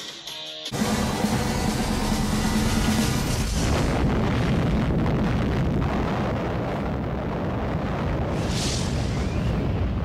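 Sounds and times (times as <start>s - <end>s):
low cinematic rumble drone: 0.8s - 7.9s
explosion effect: 2.1s - 10.0s.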